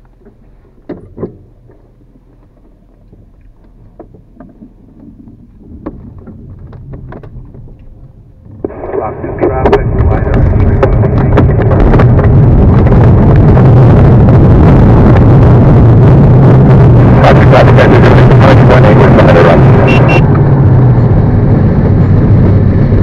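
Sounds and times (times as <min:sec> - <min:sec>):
rushing air: 0:08.6 - 0:23.0.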